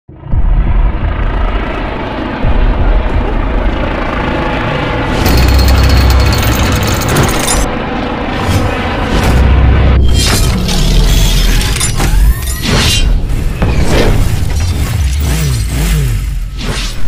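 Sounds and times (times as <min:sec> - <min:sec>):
cinematic music with booming hits: 0:00.1 - 0:17.0
heavy low rumble: 0:00.2 - 0:05.1
rapid mechanical rattling: 0:05.2 - 0:07.7.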